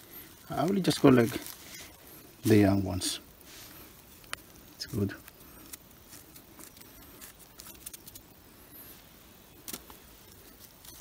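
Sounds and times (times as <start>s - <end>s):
quiet forest background: 0.0s - 11.0s
fingers picking debris: 5.2s - 8.3s.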